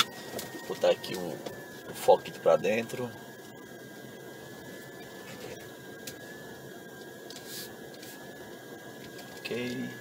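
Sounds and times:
car engine hum in cabin: 0.0 - 10.0
faint high whine: 0.0 - 10.0.

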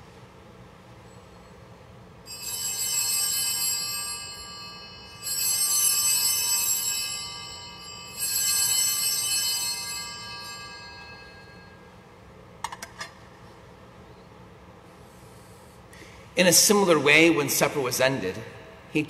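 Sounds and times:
altar bells ringing: 2.2 - 12.4.

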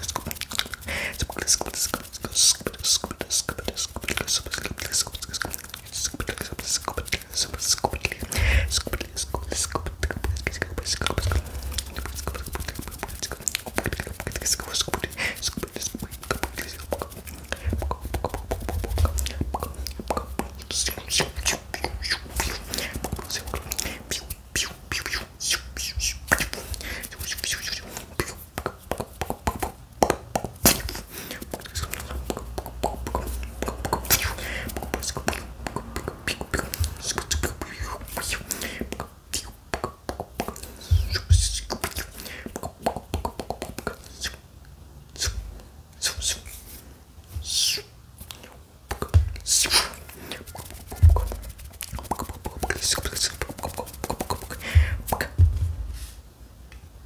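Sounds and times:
hands rubbing near microphone: 0.0 - 29.8, 30.6 - 39.5, 47.4 - 56.3
person whispering: 0.0 - 29.8, 30.6 - 44.5, 45.1 - 56.1
mouth clicks: 0.0 - 44.4, 47.4 - 55.5.

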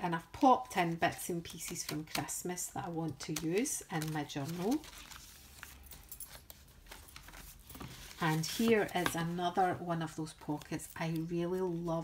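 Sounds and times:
paper pages rustling and turning: 0.2 - 12.0.

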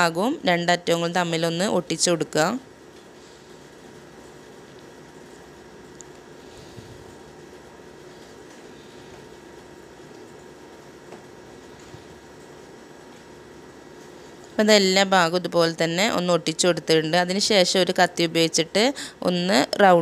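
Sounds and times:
faint hum: 0.0 - 20.0.

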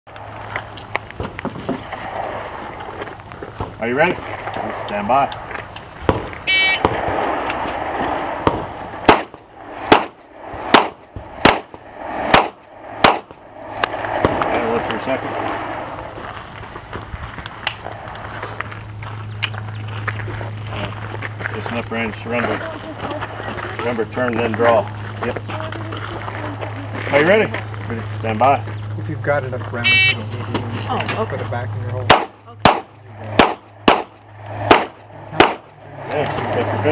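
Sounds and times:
pistol shots: 6.1 - 13.4, 32.1 - 35.7
shot timer beep: 6.5 - 6.8.

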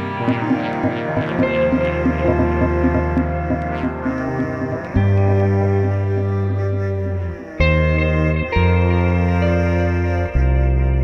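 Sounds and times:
repeating plucked notes: 0.0 - 11.0
sustained low bass note: 0.0 - 11.0.

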